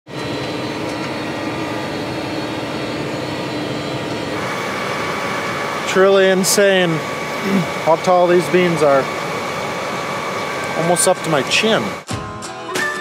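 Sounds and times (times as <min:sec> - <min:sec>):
farm machine engine droning: 0:00.1 - 0:12.1.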